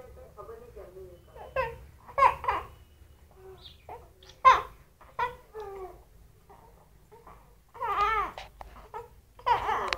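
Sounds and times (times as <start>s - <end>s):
baby crying in wavering wails: 3.4s - 9.9s.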